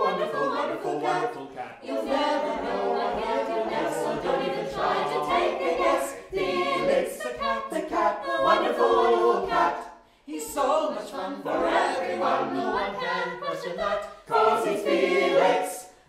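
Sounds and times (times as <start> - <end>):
mixed choir singing unaccompanied: 0.0 - 16.0.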